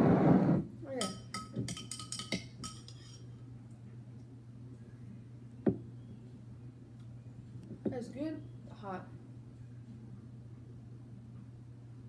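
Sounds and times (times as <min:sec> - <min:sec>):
faint low hum: 0:00.0 - 0:12.0
metal spoon clinking on glass: 0:01.0 - 0:03.3.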